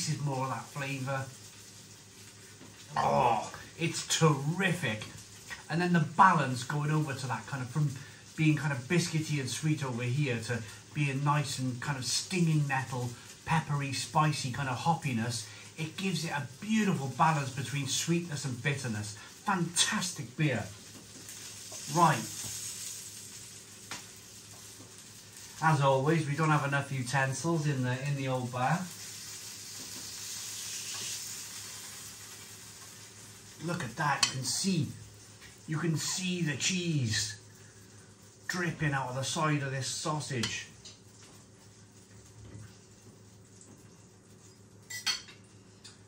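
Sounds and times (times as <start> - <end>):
sausage sizzling on a grill: 0.0 - 46.0.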